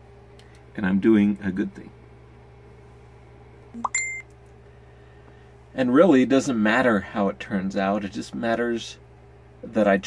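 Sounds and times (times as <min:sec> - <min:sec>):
low steady hum: 0:00.0 - 0:10.0
short electronic beep: 0:03.8 - 0:04.2.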